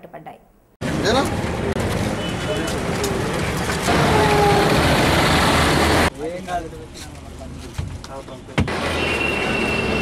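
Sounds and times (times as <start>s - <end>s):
bus engine running: 0.8s - 6.2s.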